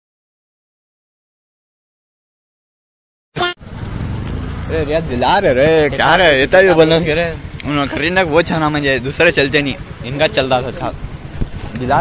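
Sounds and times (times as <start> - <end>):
clipped voice fragment: 3.4 - 3.6
man speaking: 4.7 - 11.0.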